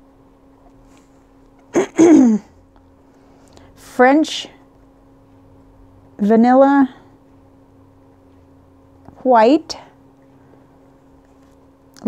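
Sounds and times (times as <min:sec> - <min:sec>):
woman clearing throat: 0:01.7 - 0:02.5.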